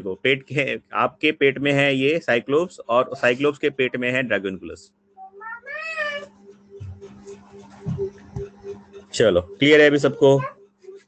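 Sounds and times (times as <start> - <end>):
low steady hum: 0.0 - 4.9, 5.9 - 11.0
soft low thumps: 6.6 - 9.1.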